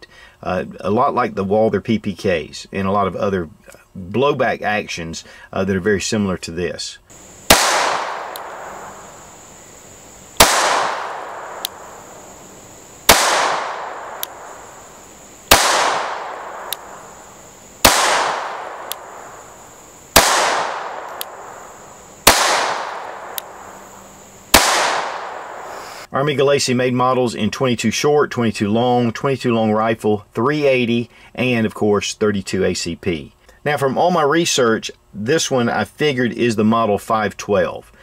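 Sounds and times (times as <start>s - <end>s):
pistol shots echoing: 7.1s - 25.7s.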